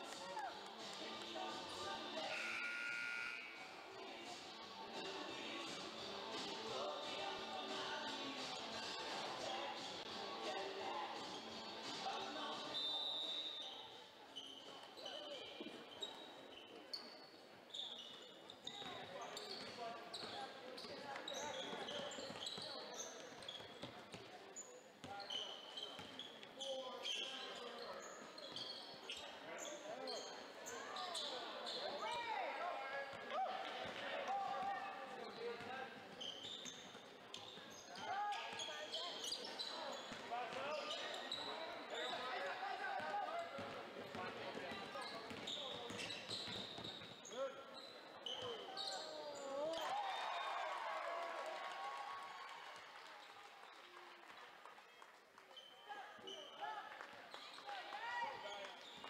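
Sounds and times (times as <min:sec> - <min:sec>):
sneaker squeaks: 0:12.6 - 0:32.2, 0:35.2 - 0:42.6, 0:43.3 - 0:50.0, 0:55.5 - 0:56.7, 0:57.3 - 0:59.0.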